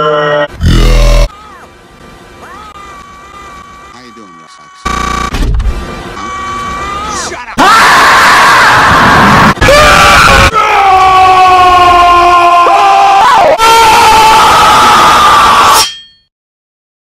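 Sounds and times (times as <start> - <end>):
distorted screaming roar: 0.0 - 1.3, 7.6 - 15.7.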